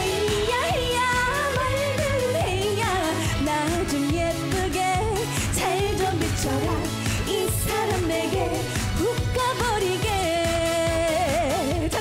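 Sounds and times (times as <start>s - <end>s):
upbeat band backing track: 0.0s - 12.0s
woman singing: 0.0s - 12.0s.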